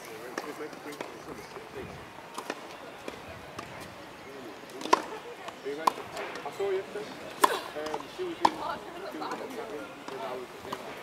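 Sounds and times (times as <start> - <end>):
faint voices: 0.0 - 11.0
tennis racket hitting ball: 7.4 - 8.6.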